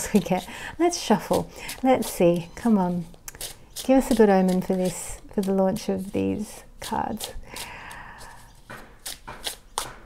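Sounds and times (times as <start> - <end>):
cards shuffling: 1.2 - 6.2, 6.8 - 10.0.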